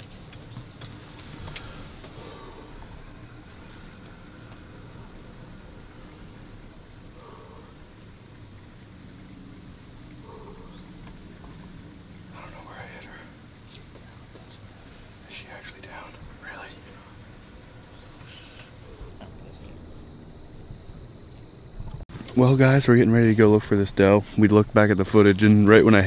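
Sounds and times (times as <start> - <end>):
insects chirring: 0.0 - 26.0
low steady rumble: 0.0 - 26.0.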